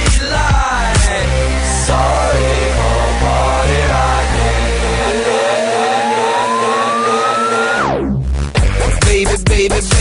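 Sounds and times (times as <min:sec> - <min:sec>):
sustained synth chords: 0:00.7 - 0:08.5
synth riser sweeping upward: 0:01.2 - 0:08.5.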